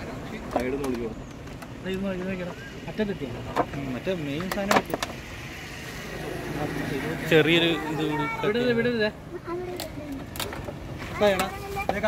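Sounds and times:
motor vehicle rumbling: 0.0 - 12.0.

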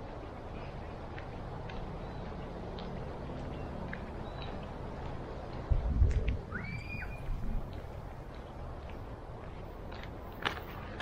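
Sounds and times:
bird call sweeping upward: 6.5 - 7.4.

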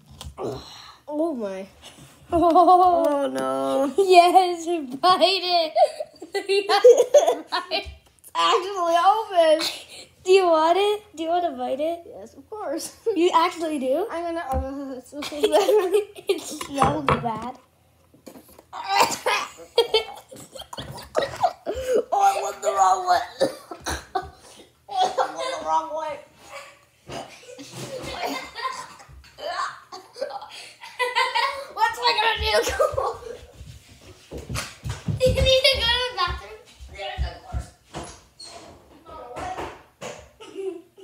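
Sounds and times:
children talking: 2.4 - 17.6, 18.7 - 33.6, 35.1 - 37.7
children laughing: 5.6 - 8.0, 18.8 - 25.8, 26.4 - 33.6, 40.4 - 41.0.

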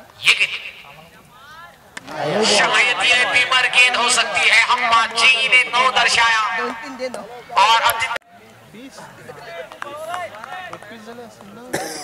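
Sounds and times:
people talking: 0.2 - 12.0.

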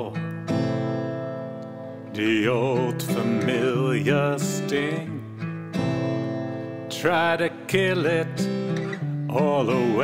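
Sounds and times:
acoustic guitar chord ringing: 0.0 - 10.0
person singing ballad: 0.0 - 10.0.

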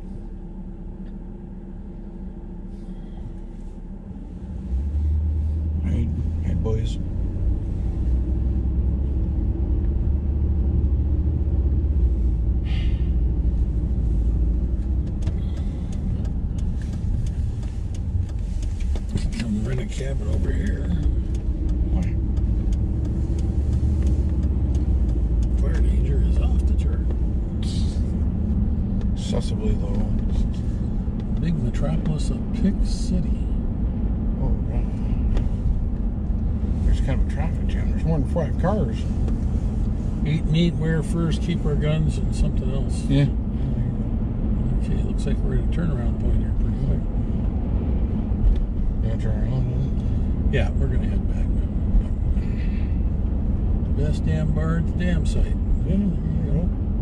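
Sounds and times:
vehicle cabin road rumble: 0.0 - 57.0.

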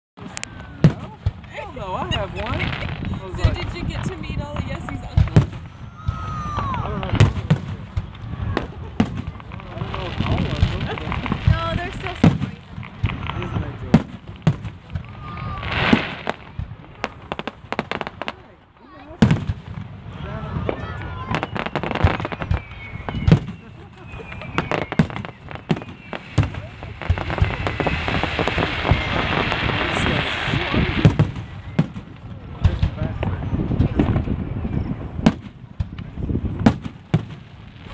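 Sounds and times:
firework bangs: 0.2 - 37.9
firework crackling: 0.2 - 37.9
firework shells bursting: 21.4 - 32.9.

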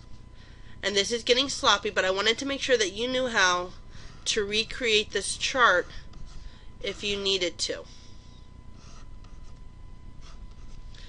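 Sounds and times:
faint high electrical tone: 0.0 - 11.0
stylus scratching on tablet: 2.4 - 7.6, 8.2 - 11.0.

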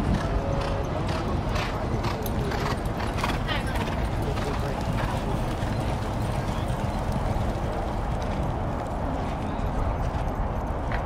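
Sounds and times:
horses galloping on dirt: 0.0 - 11.0.

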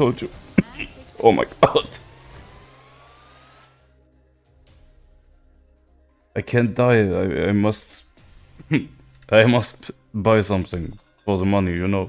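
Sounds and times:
thin rising electronic tone: 0.8 - 4.4.

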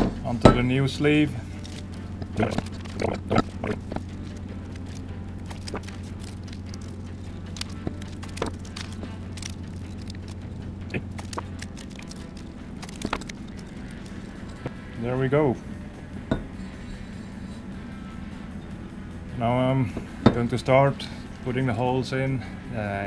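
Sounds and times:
steady low hum: 0.0 - 23.0
paper and tape rustling: 1.4 - 3.5, 4.1 - 14.7.

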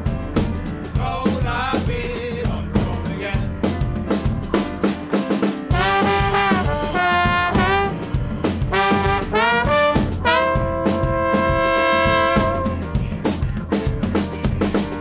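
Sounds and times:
band with piano bass and drums: 0.0 - 15.0
trombones playing melody: 5.7 - 13.0.

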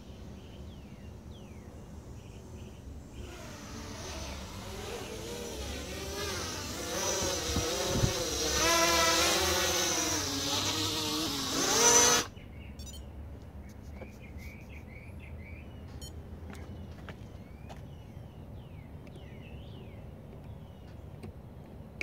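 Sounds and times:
quadcopter propellers buzzing: 0.1 - 12.3.

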